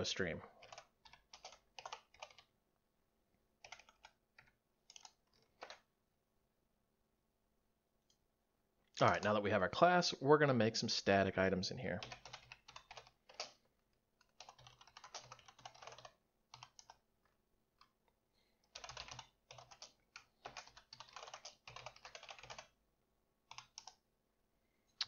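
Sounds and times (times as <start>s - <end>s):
typing on computer keyboard: 0.6s - 2.5s, 3.6s - 5.9s, 12.0s - 17.0s, 18.6s - 22.8s, 23.5s - 24.0s.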